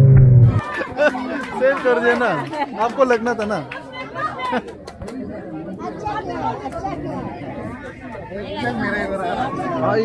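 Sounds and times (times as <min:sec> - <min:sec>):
mixed chatter: 0:00.4 - 0:10.0.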